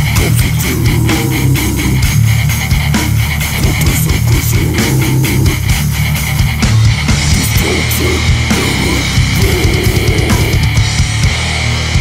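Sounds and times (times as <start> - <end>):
rapid drum hits: 0.0 - 11.4
bass guitar: 0.0 - 12.0
heavy electric guitar riffing: 0.0 - 12.0.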